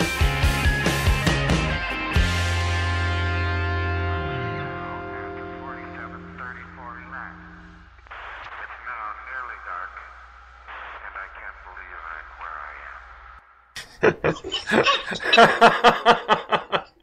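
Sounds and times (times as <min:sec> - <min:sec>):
steady low hum: 0:04.7 - 0:16.7
voice speaking over radio: 0:05.1 - 0:07.8, 0:08.4 - 0:10.3, 0:10.9 - 0:13.1
loud laughter: 0:13.8 - 0:17.0.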